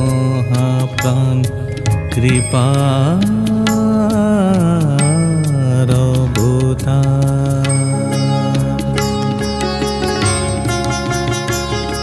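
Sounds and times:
rhythmic percussion: 0.0s - 12.0s
wavering instrumental melody: 0.0s - 12.0s.

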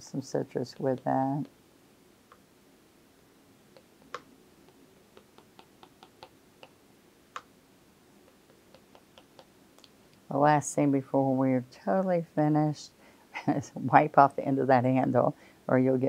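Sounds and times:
paintbrush handle tapping paper: 4.0s - 6.8s, 8.3s - 9.5s.

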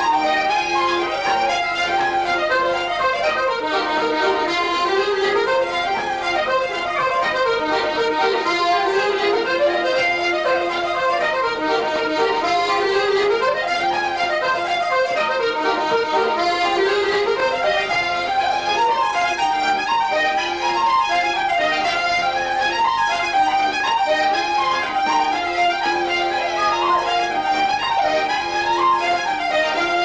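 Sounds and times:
accordion and fiddle dance music: 0.0s - 30.0s.

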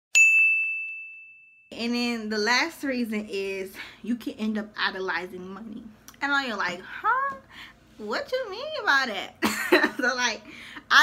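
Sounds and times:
high bell-like ding: 0.1s - 1.7s.

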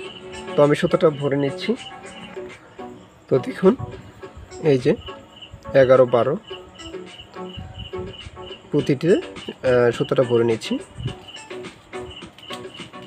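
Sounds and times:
high-pitched chirping: 0.0s - 13.0s
person speaking: 0.4s - 2.6s, 3.2s - 6.6s, 8.5s - 11.2s.

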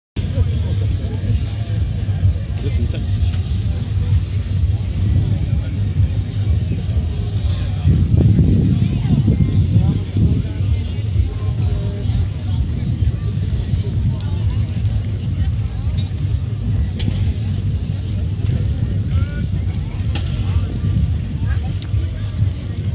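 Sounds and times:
low rumble: 0.2s - 22.9s
voices of people nearby: 0.2s - 22.9s.

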